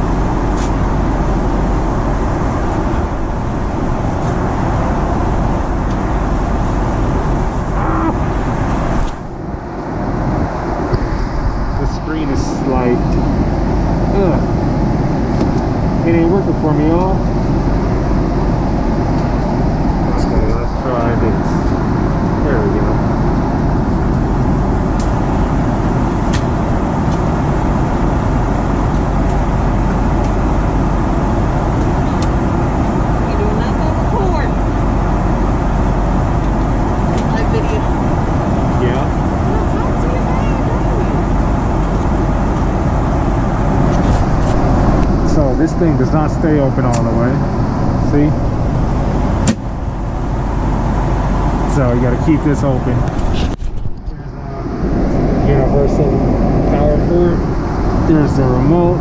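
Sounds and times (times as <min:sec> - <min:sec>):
airplane cabin roar: 0:00.0 - 0:59.0.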